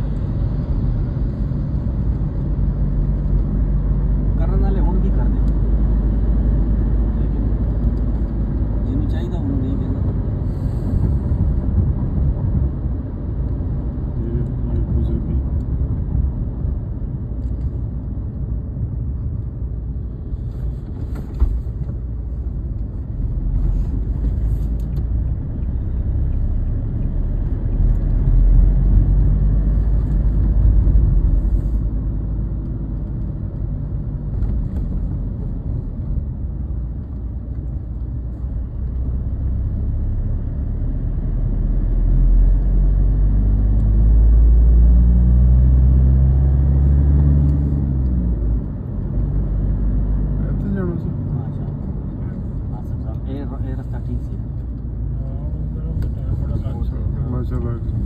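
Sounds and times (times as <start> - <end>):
car engine: 0.0 - 58.0
road rumble: 0.0 - 58.0.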